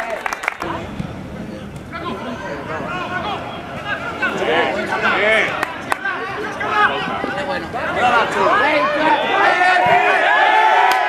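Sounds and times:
people calling and shouting: 0:00.6 - 0:11.0.

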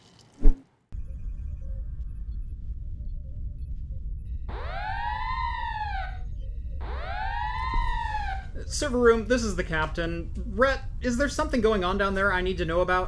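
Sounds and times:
rising and falling alarm siren: 0:01.0 - 0:09.2
steady low rumble: 0:01.0 - 0:13.0.

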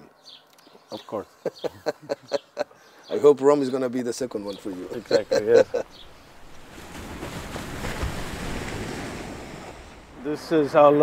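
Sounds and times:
waves breaking over rocks: 0:06.0 - 0:10.4.

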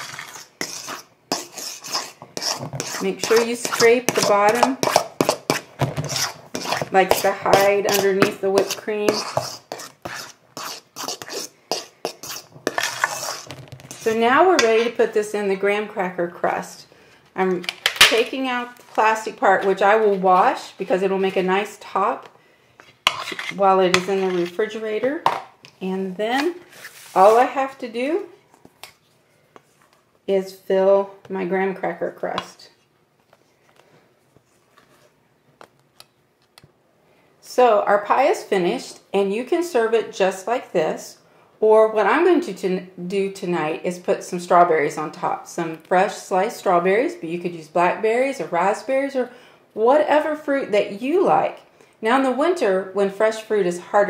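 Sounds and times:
utensil scraping metal bowl: 0:00.0 - 0:14.8, 0:23.0 - 0:24.8.

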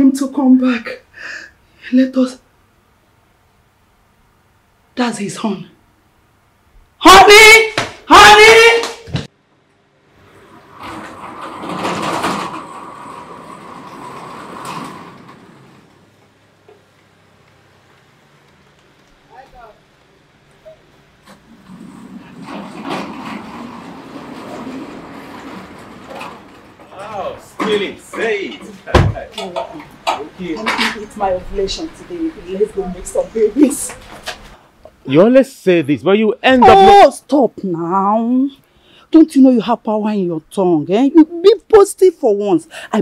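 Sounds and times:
sliding gate grinding roll: 0:10.2 - 0:16.3, 0:21.2 - 0:28.7
metal gate clanking: 0:10.7 - 0:16.0.

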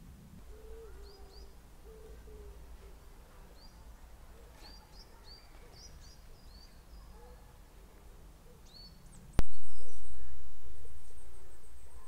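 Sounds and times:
small birds chirping: 0:00.4 - 0:12.0.

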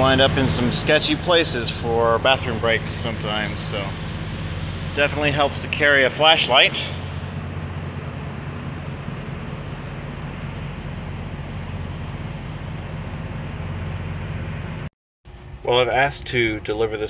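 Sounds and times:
even hiss: 0:00.0 - 0:07.4
diesel engine idling: 0:00.0 - 0:17.0.

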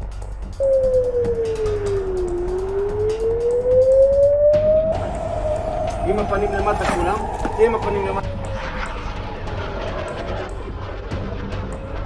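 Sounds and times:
background music with light beat: 0:00.0 - 0:12.0
air-raid siren wailing: 0:00.6 - 0:10.6.

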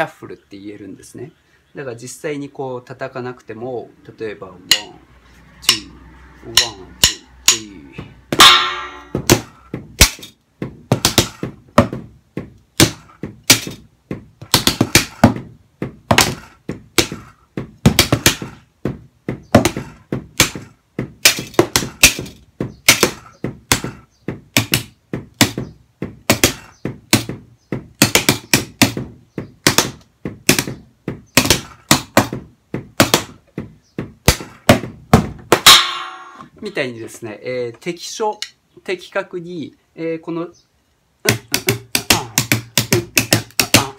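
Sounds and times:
drumsticks on muffled practice pads: 0:05.6 - 0:37.2, 0:41.2 - 0:43.9.

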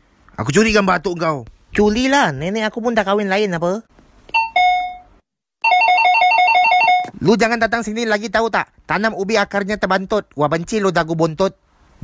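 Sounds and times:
two-note electronic door chime: 0:04.3 - 0:05.1.

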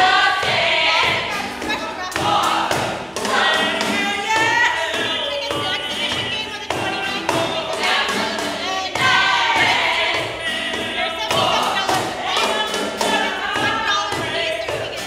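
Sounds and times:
box drum thumping: 0:00.0 - 0:15.0
instrumental accompaniment: 0:00.0 - 0:15.0
voices singing: 0:00.0 - 0:15.0.

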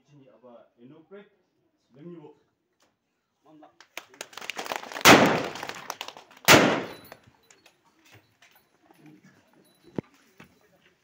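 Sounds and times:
loud bangs: 0:04.6 - 0:07.2.

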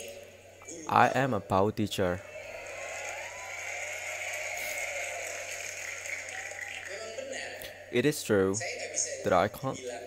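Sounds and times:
steady hiss and low hum: 0:00.0 - 0:10.0.

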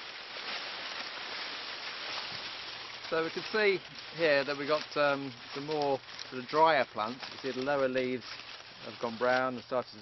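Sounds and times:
leaves brushing against clothes: 0:00.0 - 0:10.0
maize stalks rustling: 0:00.0 - 0:10.0.

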